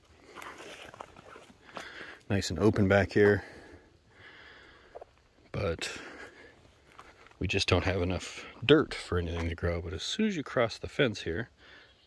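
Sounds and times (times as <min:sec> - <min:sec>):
footsteps on stony ground: 0:00.0 - 0:03.7, 0:04.7 - 0:05.4, 0:06.1 - 0:09.8.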